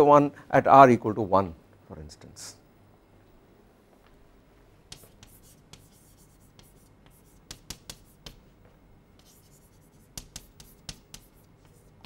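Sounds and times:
chalk scratching on blackboard: 0:04.9 - 0:08.4, 0:09.2 - 0:12.0
chalk tapping on blackboard: 0:04.9 - 0:08.4, 0:09.2 - 0:12.0.

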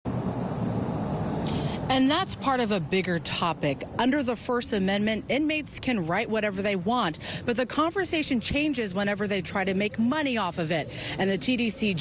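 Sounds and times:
low outdoor background rumble: 0:00.1 - 0:12.0
woman speaking: 0:01.9 - 0:12.0.

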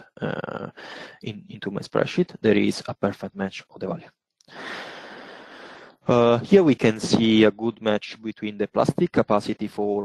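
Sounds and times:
person sighing: 0:04.5 - 0:05.8.

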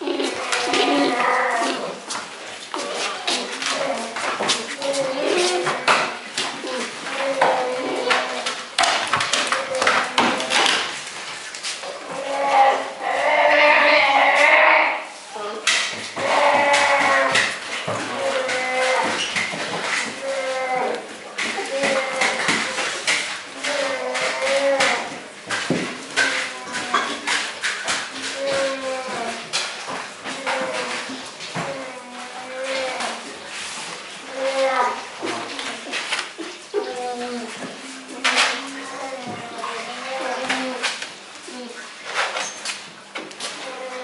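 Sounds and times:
bear cubs calling: 0:16.2 - 0:17.4.

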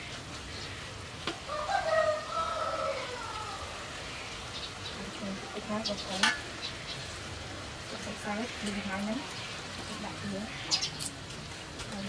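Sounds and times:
food sizzling in a wok: 0:00.0 - 0:11.7
rooster crowing: 0:01.5 - 0:03.9.

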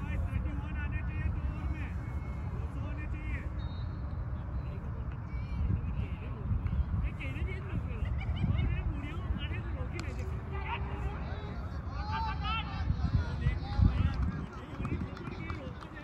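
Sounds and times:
wind on microphone: 0:12.7 - 0:15.8.

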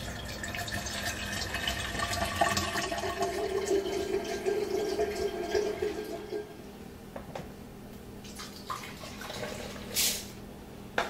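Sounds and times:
faucet water filling carafe: 0:00.0 - 0:06.6, 0:08.2 - 0:10.3.

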